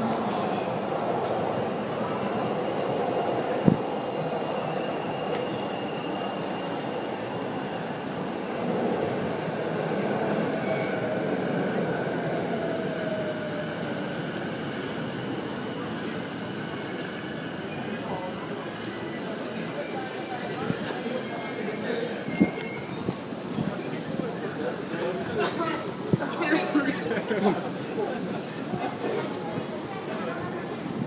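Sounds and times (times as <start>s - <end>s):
train rolling noise: 0.0s - 31.0s
train wheels squealing: 1.7s - 8.7s, 10.3s - 11.3s, 12.8s - 23.2s.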